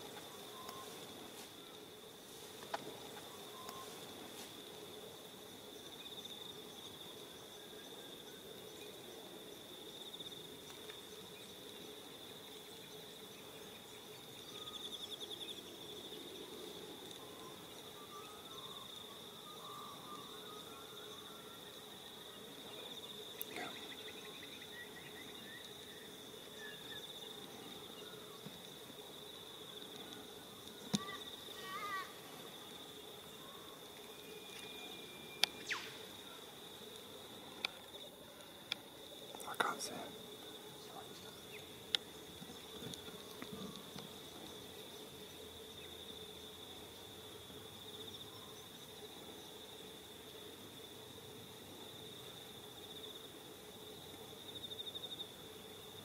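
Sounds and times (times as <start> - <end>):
insects chirping: 0.0 - 56.0.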